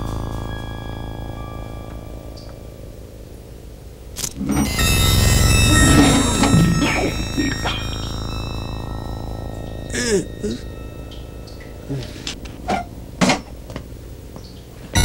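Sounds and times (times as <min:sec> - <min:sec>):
low synthesizer drone: 0:00.0 - 0:15.0
sustained high synth tones: 0:00.0 - 0:15.0
loud noise crash: 0:04.3 - 0:10.0.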